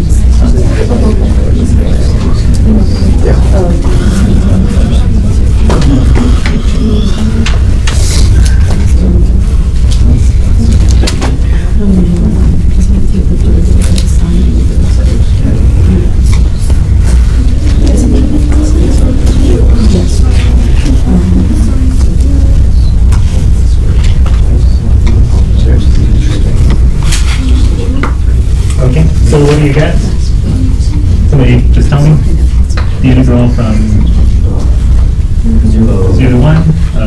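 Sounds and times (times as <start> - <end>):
faint voices: 0.0 - 37.0
loud low rumble: 0.0 - 37.0.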